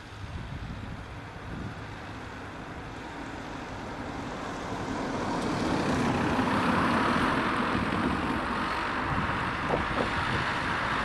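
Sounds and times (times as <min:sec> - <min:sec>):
vehicle running noise: 0:00.0 - 0:11.0.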